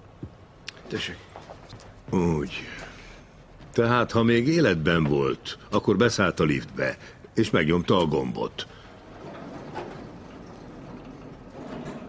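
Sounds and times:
elevator doors sliding shut: 0:07.4 - 0:12.0.

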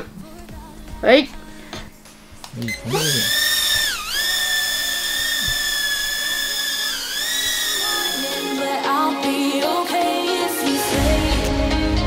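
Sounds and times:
music: 0:00.0 - 0:03.8, 0:07.7 - 0:12.0
toy drone propellers whining: 0:02.7 - 0:08.7.

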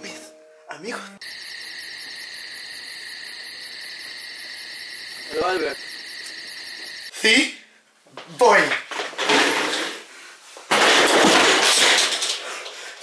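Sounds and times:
cricket chirp ringtone: 0:01.2 - 0:07.1.

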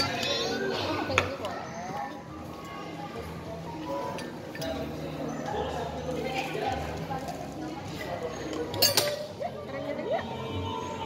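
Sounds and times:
murmur of voices: 0:00.0 - 0:11.0
metal scoop clinking on glass jar: 0:08.7 - 0:09.3.

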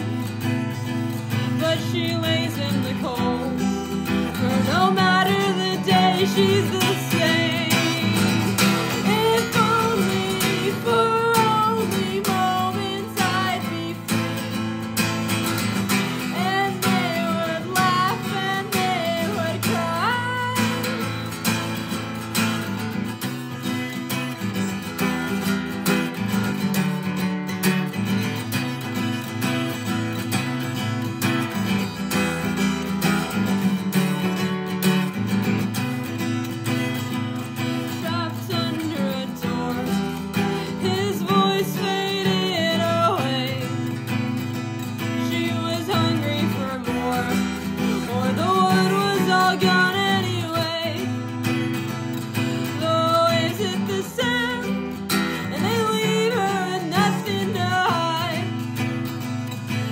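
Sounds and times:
person singing: 0:00.0 - 0:22.1, 0:37.6 - 0:59.9
acoustic guitar playing: 0:00.0 - 0:59.9.

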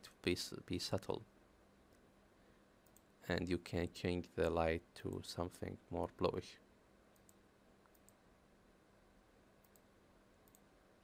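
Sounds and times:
faint steady hum: 0:00.0 - 0:11.0
computer mouse clicks: 0:02.8 - 0:03.1, 0:07.1 - 0:08.2, 0:09.6 - 0:10.7.

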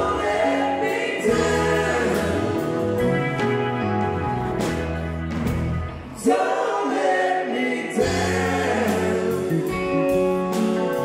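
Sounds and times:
people singing together: 0:00.0 - 0:03.4, 0:06.1 - 0:10.4
bass guitar: 0:00.0 - 0:06.6, 0:07.9 - 0:11.0
electric guitars: 0:00.0 - 0:06.7, 0:08.0 - 0:11.0
drums: 0:00.0 - 0:11.0.

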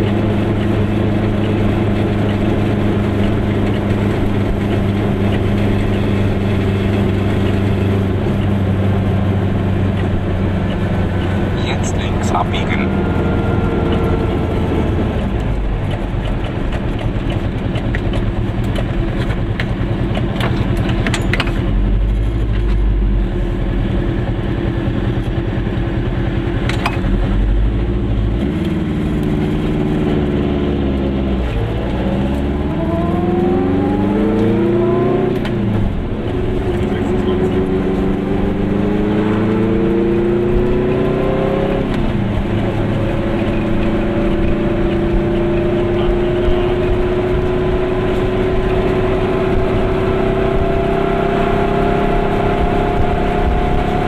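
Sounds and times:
small two-stroke car engine accelerating: 0:00.0 - 0:54.0.

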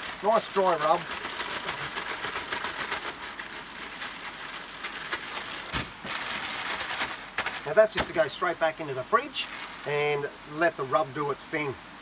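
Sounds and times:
hands rubbing spice into meat: 0:00.0 - 0:05.6
plastic bag crinkling: 0:00.0 - 0:08.5, 0:09.3 - 0:09.9.

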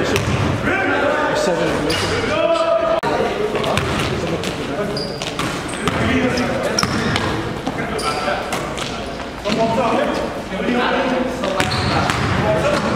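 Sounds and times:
players' voices: 0:00.0 - 0:12.9
sneaker squeaks: 0:01.9 - 0:02.3, 0:03.6 - 0:09.7, 0:11.5 - 0:12.9.

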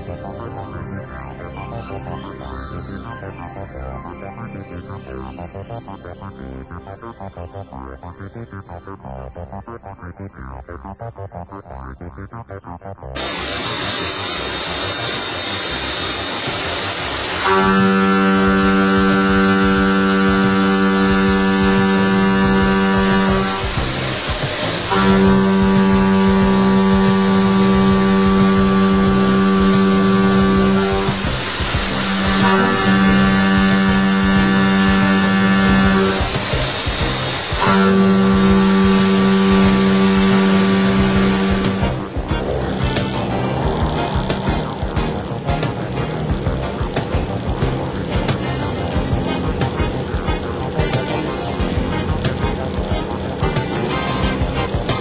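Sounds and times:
constant high hiss: 0:13.2 - 0:55.0
milling machine cutting metal: 0:13.2 - 0:55.0.

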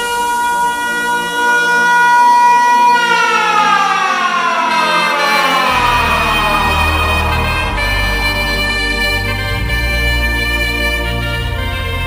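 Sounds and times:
siren-like electronic tone: 0:05.1 - 0:10.9
dance music mix: 0:05.2 - 0:10.3.

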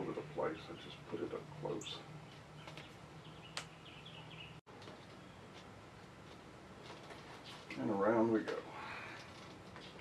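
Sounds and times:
faint bird chirping: 0:00.0 - 0:05.6.

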